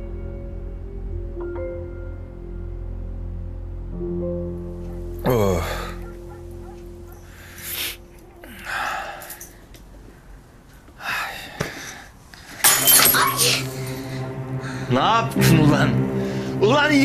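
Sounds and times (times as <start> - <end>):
quiet background music: 0.0 - 11.2, 12.6 - 17.0
glass breaking: 12.6 - 13.6.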